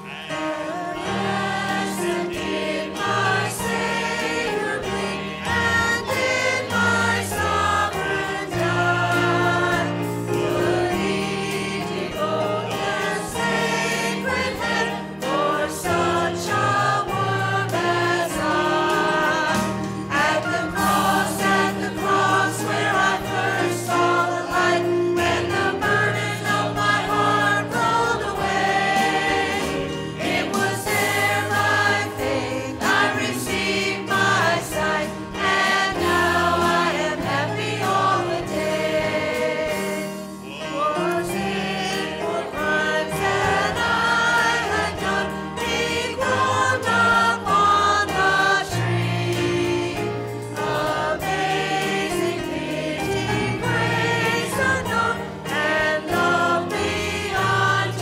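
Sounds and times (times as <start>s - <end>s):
church choir singing a hymn: 0.0s - 58.0s.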